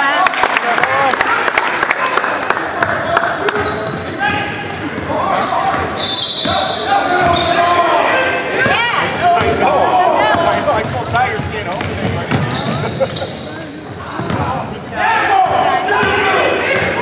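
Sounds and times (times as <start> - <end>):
sneakers squeaking: 3.5 - 17.0.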